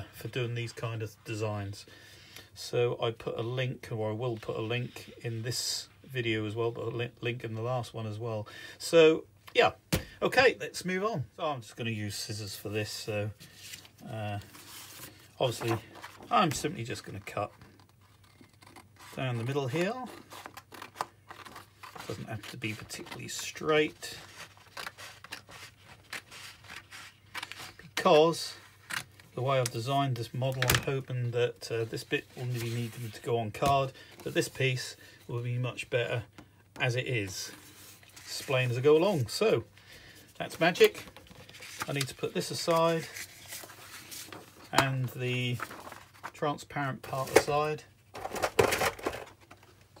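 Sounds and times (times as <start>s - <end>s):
paper and card rustling: 12.4s - 50.0s.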